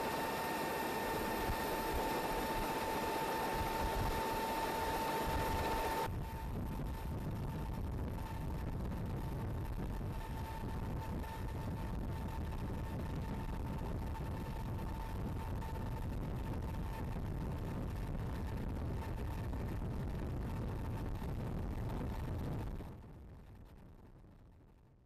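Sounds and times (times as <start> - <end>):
aircraft engine drone: 0.0 - 15.8
thin constant whine: 0.0 - 24.8.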